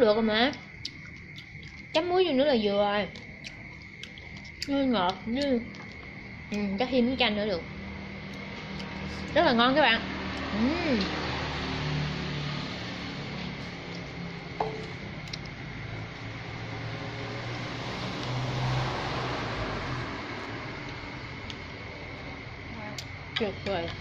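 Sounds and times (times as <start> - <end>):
low hum: 5.8 - 24.0.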